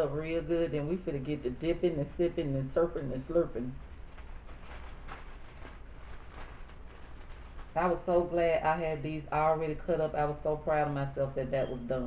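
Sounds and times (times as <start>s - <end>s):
steady low hum: 0.0s - 12.0s
food rustling while mixed: 3.8s - 8.4s.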